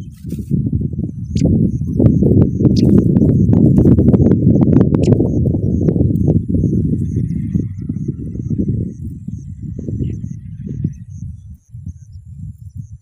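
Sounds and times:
low rustling and buffeting: 0.0 - 13.0
thin high peeps: 1.1 - 7.8.

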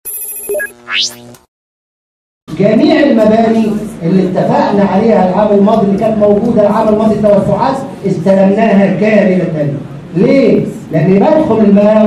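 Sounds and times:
chime-like electronic tones: 0.0 - 1.2
quick electronic blips: 0.0 - 1.5.

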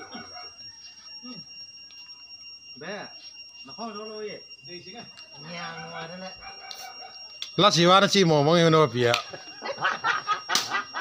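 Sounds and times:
faint high-pitched tone: 0.0 - 9.1
men talking and calling out: 2.7 - 11.0.

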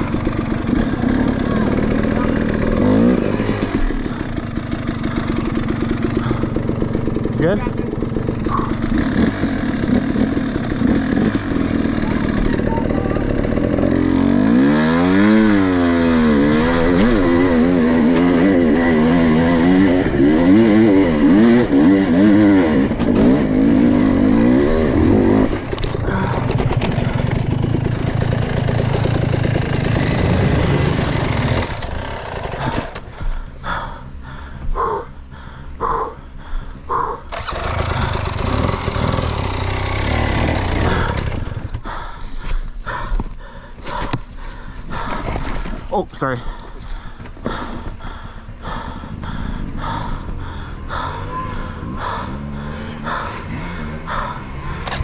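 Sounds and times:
dirt bike engine revving: 0.0 - 34.0, 37.2 - 41.9, 47.4 - 55.0
dirt bike engines idling: 0.0 - 55.0.

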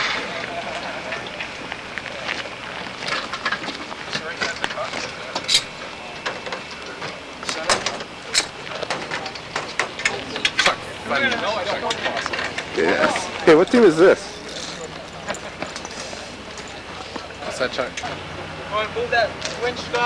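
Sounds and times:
onlookers talking outdoors: 0.0 - 20.0
sharp knocks and clanks: 3.1 - 13.3.

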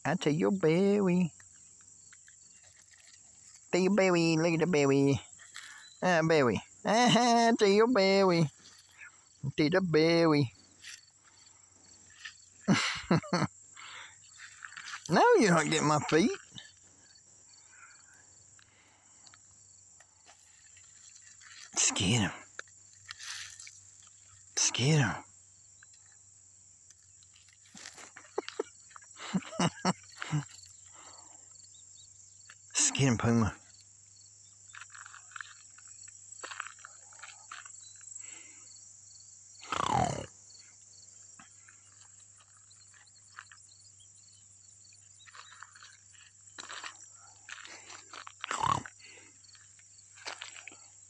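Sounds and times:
faint insect chirps: 0.0 - 51.0.

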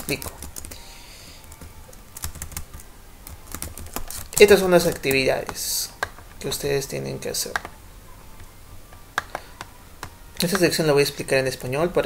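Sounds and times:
keyboard typing: 0.0 - 6.3, 7.4 - 7.8.

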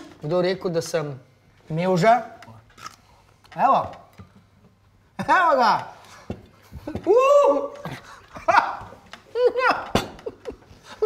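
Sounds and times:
man laughing: 7.6 - 11.0.

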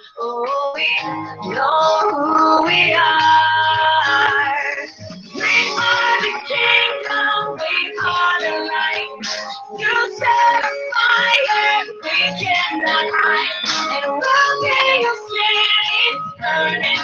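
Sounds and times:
worship song with singing: 0.0 - 17.0.

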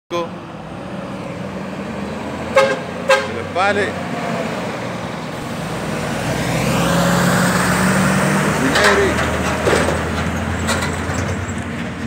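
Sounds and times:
diesel truck engine running: 0.2 - 12.0.

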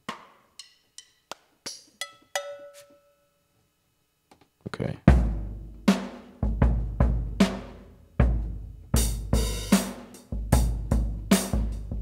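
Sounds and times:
drum hits: 5.1 - 12.0.

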